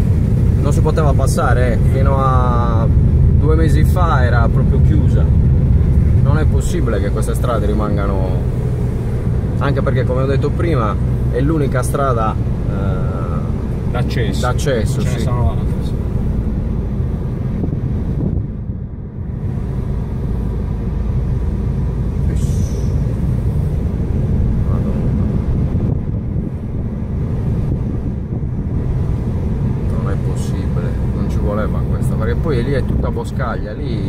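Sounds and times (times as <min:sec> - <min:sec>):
car engine and tyre noise: 0:00.0 - 0:34.0.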